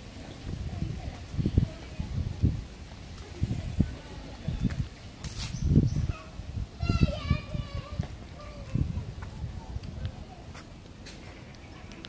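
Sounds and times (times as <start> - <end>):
child calling out: 6.1 - 8.9.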